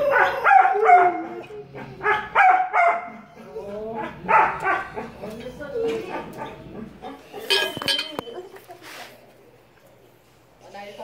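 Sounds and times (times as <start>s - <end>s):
dog barking and yelping: 0.0s - 3.4s, 4.0s - 7.6s.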